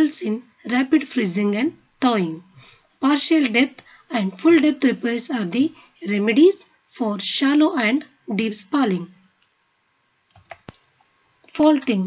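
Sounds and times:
computer mouse clicks: 10.3s - 12.0s.

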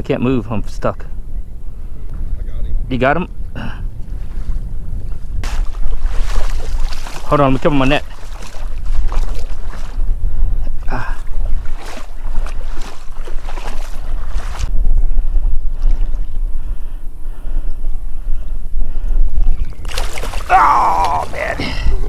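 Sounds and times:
wind buffeting microphone: 0.0s - 22.0s
water sloshing around wading legs: 5.4s - 14.7s, 19.5s - 22.0s.

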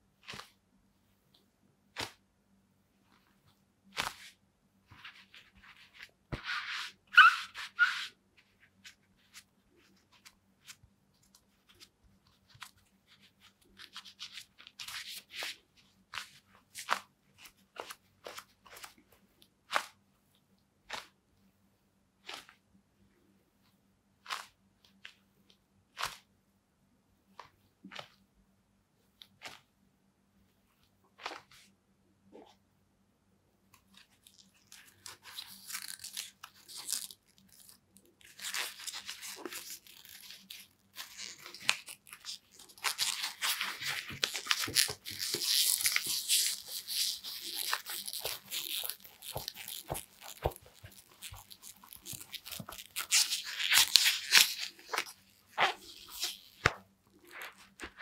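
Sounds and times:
gloves scuffing and rustling: 3.0s - 20.1s, 30.4s - 32.6s, 38.3s - 58.0s
gloves crunching and rubbing: 33.8s - 58.0s.

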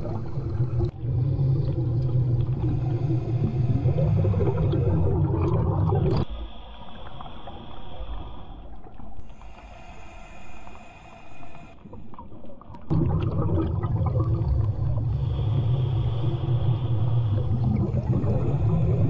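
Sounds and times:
low underwater rumble: 0.0s - 9.3s, 12.0s - 19.0s
underwater hiss: 0.0s - 12.6s, 13.7s - 19.0s.

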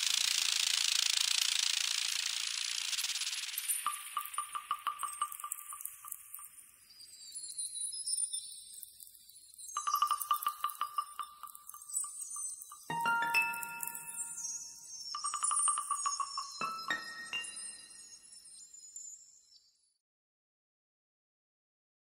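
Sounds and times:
electronic music with chime-like tones: 9.8s - 18.5s
held tones: 12.9s - 18.0s.

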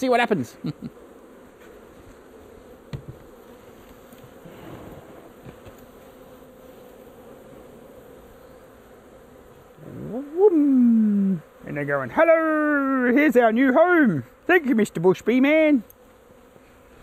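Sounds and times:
bees buzzing: 0.0s - 17.0s
knock on hive box: 2.9s - 3.4s.

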